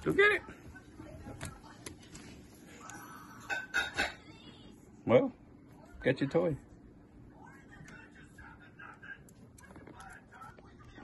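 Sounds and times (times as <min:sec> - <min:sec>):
dog claws clicking on tile floor: 0:08.8 - 0:11.0.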